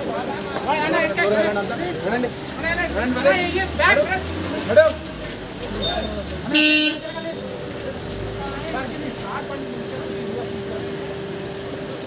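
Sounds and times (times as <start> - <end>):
murmur of crowd voices: 0.0 - 12.0
vehicle horn honk: 5.8 - 7.4.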